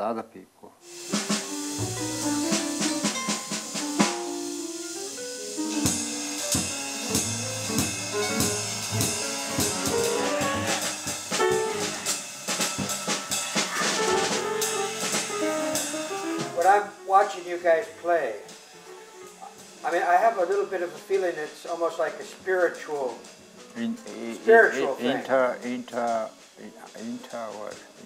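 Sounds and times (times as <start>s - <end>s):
drum kit with cymbals: 0.8s - 28.0s
piano: 0.8s - 28.0s
double bass: 7.1s - 12.1s.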